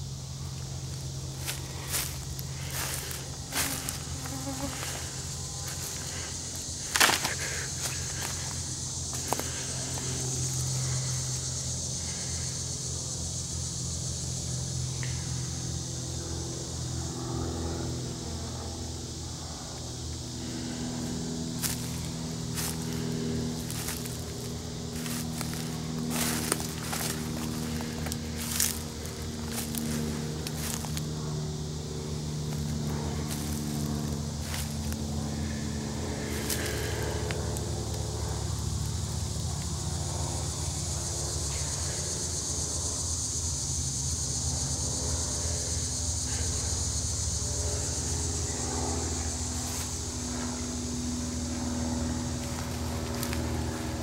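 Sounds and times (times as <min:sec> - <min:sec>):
high-pitched insect drone: 0:00.0 - 0:54.0
low buzzing hum: 0:00.0 - 0:54.0.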